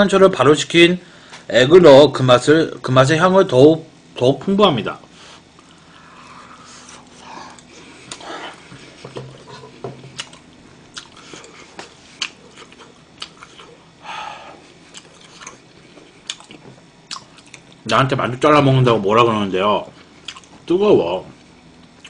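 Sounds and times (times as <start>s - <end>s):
person chewing food: 6.8s - 14.0s, 14.6s - 17.8s, 20.0s - 20.6s.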